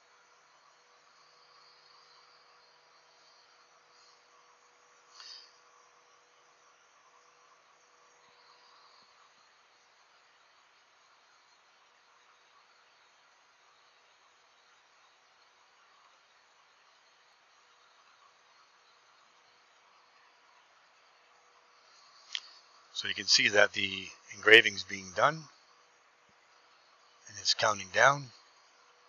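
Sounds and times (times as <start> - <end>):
faint hum: 0.0 - 29.0
faint steady hiss: 0.0 - 29.0.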